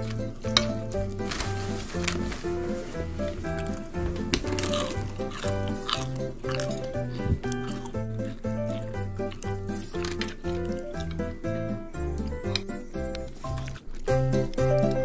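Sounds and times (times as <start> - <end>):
bouncy background music: 0.0 - 15.0.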